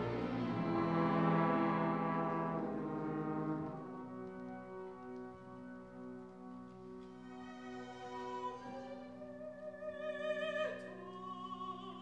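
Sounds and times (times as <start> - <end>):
orchestra brass sustained chord: 0.0 - 6.6.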